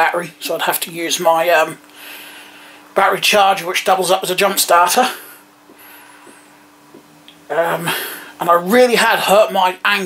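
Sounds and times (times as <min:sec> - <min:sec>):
speech: 0:00.0 - 0:01.8, 0:03.0 - 0:05.2, 0:07.5 - 0:10.0
faint steady hum: 0:00.0 - 0:10.0.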